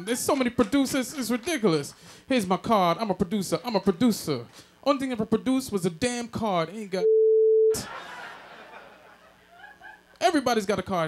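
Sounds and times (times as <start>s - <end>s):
censor bleep: 7.0s - 7.8s.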